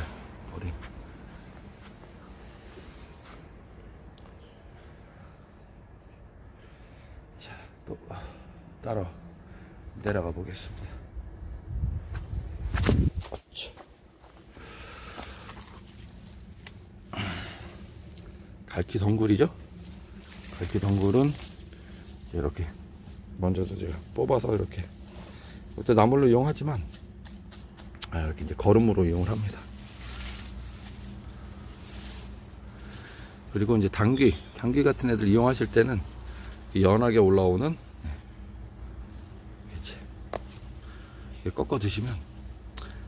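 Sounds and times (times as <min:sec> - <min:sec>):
faint low hum: 0:00.0 - 0:43.0
footsteps through garden bed: 0:12.0 - 0:40.9
plants rustling: 0:12.0 - 0:43.0.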